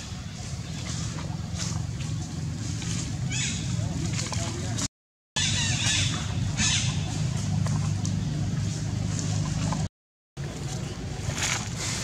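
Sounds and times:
steady low rumble: 5.5 - 11.9.

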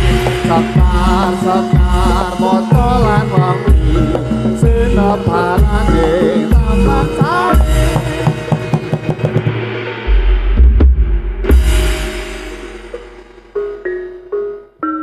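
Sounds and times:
person singing gliding melody: 0.0 - 9.0
drumming: 0.0 - 14.8
metallophone ringing notes: 11.9 - 15.0.

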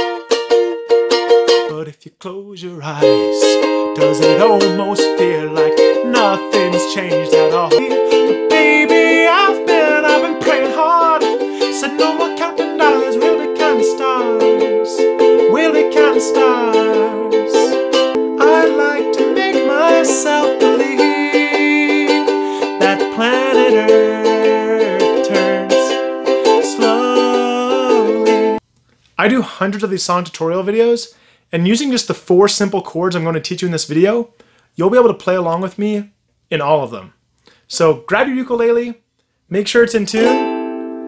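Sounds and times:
man singing: 0.0 - 1.0, 1.6 - 28.6, 40.2 - 40.4
ukulele strumming: 0.0 - 1.9, 2.9 - 28.6, 40.1 - 41.0.

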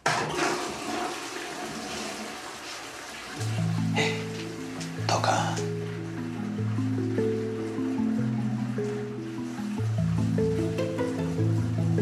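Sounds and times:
toilet flushing: 0.0 - 12.0
music with low bass notes: 3.4 - 12.0.

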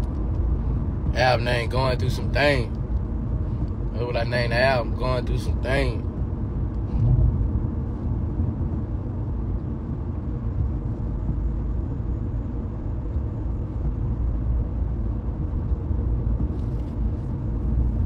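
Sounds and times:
steady low rumble: 0.0 - 18.0.

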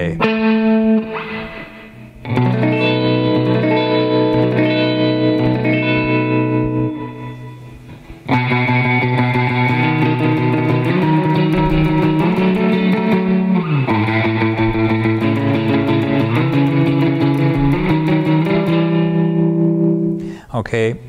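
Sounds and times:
surf electric guitar picking: 0.0 - 20.3.

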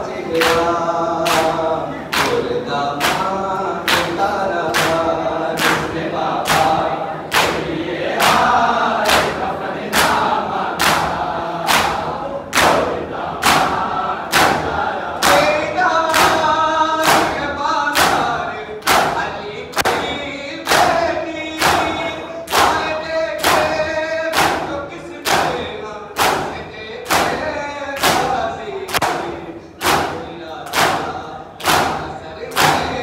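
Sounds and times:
men chanting in chorus: 0.0 - 33.0.

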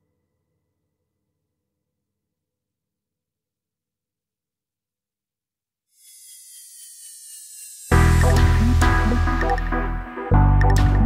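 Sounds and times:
soft background music: 7.9 - 11.0.

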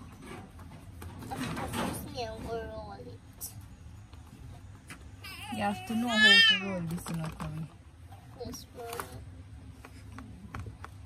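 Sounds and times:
toddler whining cry: 5.2 - 6.7.

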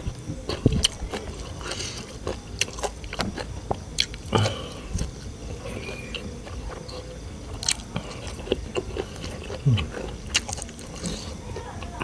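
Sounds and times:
low hum from person: 0.0 - 12.0
person chewing food: 0.0 - 12.0.

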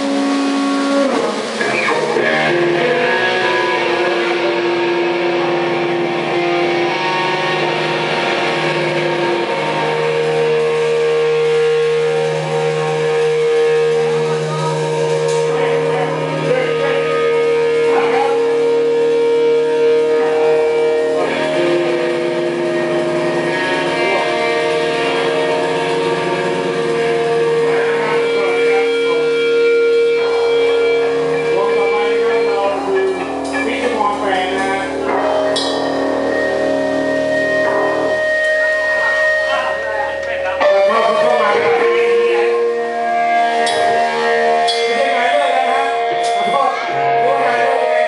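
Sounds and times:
live band with sustained guitars: 0.0 - 48.0
strummed guitar: 0.0 - 48.0.

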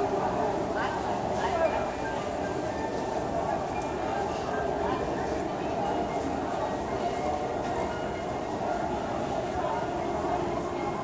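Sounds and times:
crowd hubbub in a hall: 0.0 - 11.0.

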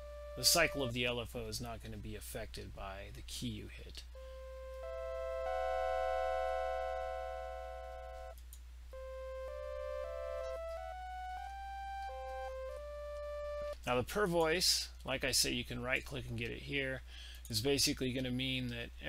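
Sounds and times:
synth organ chord: 0.0 - 0.9, 4.2 - 8.4, 9.0 - 13.8
synth organ single notes: 0.0 - 0.9, 4.1 - 13.8.

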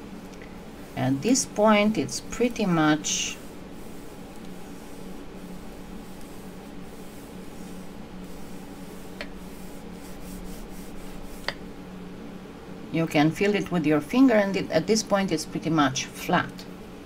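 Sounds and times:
roller rubbing over wax paper: 0.6 - 11.6.

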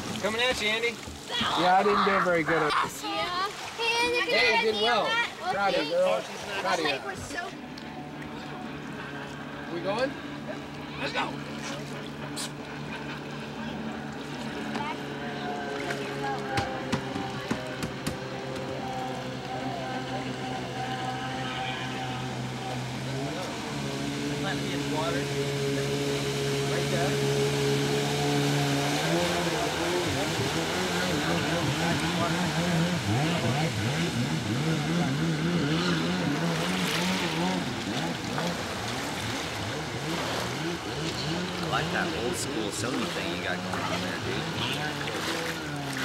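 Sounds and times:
jet ski engine running: 0.0 - 46.0.

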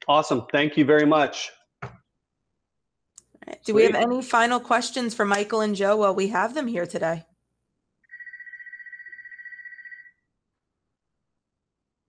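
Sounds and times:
electronic telephone ringing: 8.1 - 10.2.

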